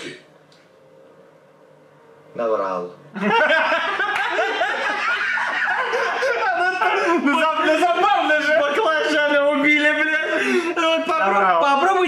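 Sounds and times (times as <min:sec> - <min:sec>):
men laughing: 0:03.2 - 0:11.5.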